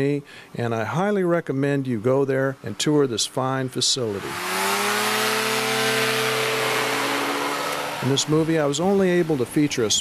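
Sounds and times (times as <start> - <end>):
two-stroke engine and propeller buzzing: 4.1 - 10.0.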